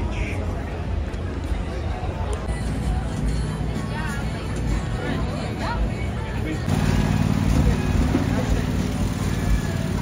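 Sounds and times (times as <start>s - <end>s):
low engine-like hum: 2.2s - 10.0s.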